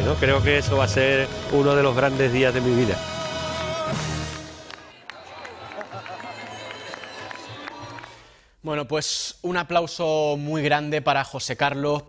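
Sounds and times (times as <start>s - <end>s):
spectators calling and cheering: 0.0s - 8.2s.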